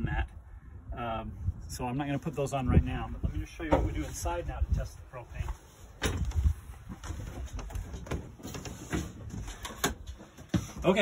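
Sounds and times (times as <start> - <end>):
trailer door handled: 6.0 - 11.0.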